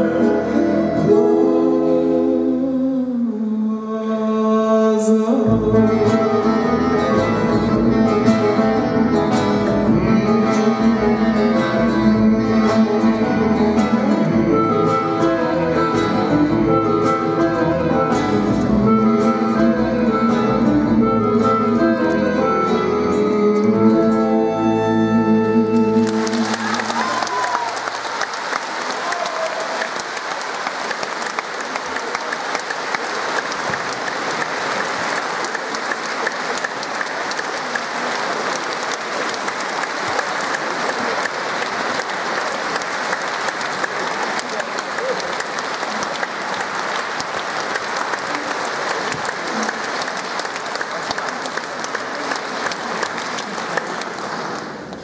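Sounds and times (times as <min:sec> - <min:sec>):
audience applauding: 0:25.8 - 0:55.0.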